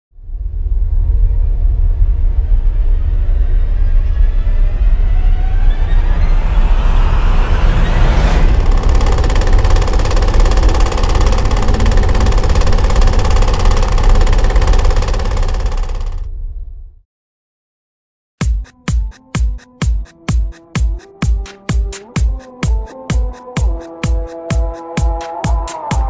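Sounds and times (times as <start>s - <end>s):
low rumble: 0.1s - 17.0s
rising sweep: 0.2s - 14.4s
dense sustained drone: 0.2s - 16.1s.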